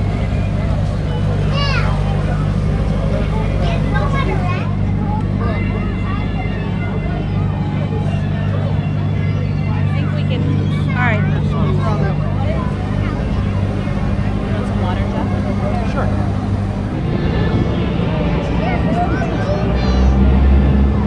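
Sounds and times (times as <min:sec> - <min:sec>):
boat engine humming: 0:00.0 - 0:21.0
children's voices: 0:00.0 - 0:21.0
passengers chattering: 0:00.0 - 0:21.0.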